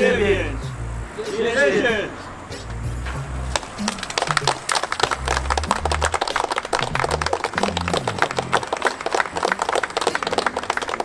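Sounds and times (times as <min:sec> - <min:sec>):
background music with bass: 0:00.0 - 0:09.8
people clapping: 0:03.5 - 0:11.0.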